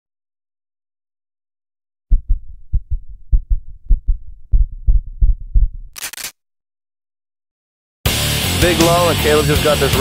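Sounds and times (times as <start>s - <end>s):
heartbeat thumps: 2.1s - 6.0s.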